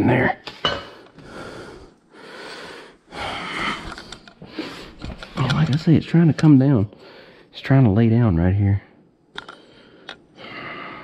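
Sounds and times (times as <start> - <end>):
man breathing hard: 1.0 - 5.2, 9.5 - 11.0.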